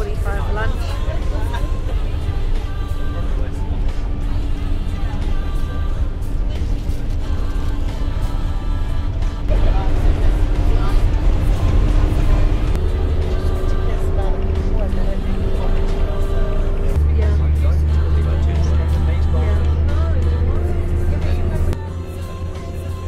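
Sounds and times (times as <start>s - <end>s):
music: 0.0s - 23.0s
truck engine rumble inside cabin: 0.0s - 23.0s.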